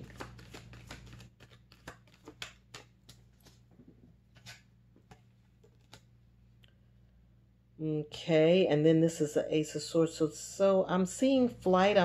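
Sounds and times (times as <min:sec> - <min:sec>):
cards clicking and tapping: 0:00.0 - 0:06.1.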